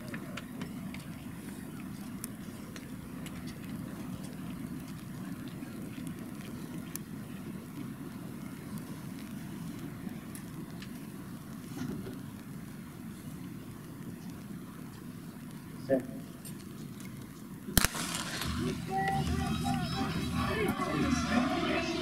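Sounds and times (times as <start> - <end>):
low rumble: 17.8 - 22.0.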